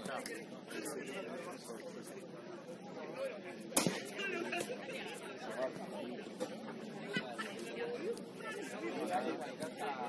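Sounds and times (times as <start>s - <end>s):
indistinct chatter of voices: 0.0s - 10.0s
sharp thump: 3.8s - 4.0s.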